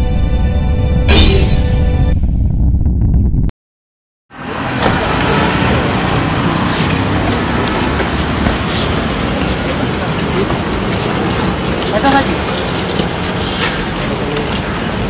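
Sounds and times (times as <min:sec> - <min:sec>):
road traffic noise: 0:04.3 - 0:15.0.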